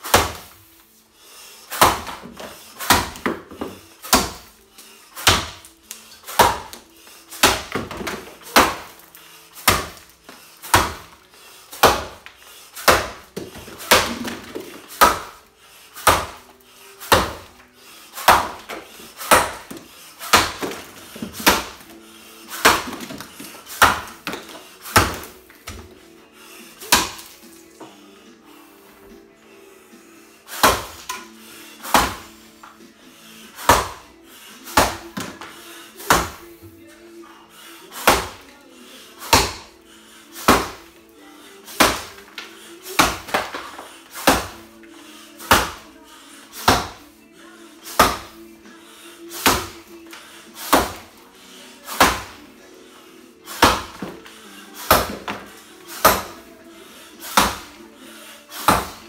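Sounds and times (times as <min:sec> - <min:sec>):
axe chopping wood block: 0:00.0 - 0:00.6, 0:01.7 - 0:04.6, 0:05.2 - 0:15.4, 0:16.0 - 0:17.6, 0:18.2 - 0:21.9, 0:22.5 - 0:25.9, 0:26.8 - 0:27.4, 0:30.6 - 0:32.3, 0:33.6 - 0:34.1, 0:34.7 - 0:36.4, 0:38.0 - 0:38.4, 0:39.2 - 0:39.8, 0:40.4 - 0:40.9, 0:41.7 - 0:44.7, 0:45.4 - 0:45.8, 0:46.6 - 0:47.0, 0:47.9 - 0:48.4, 0:49.4 - 0:51.2, 0:51.9 - 0:52.4, 0:53.5 - 0:54.2, 0:54.8 - 0:56.5, 0:57.3 - 0:57.8, 0:58.6 - 0:59.0.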